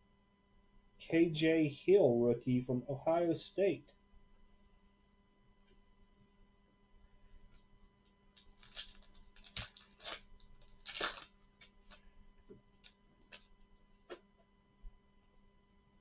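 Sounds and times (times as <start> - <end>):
foil wrapper tearing and crinkling: 8.3 - 12.1, 12.7 - 13.6.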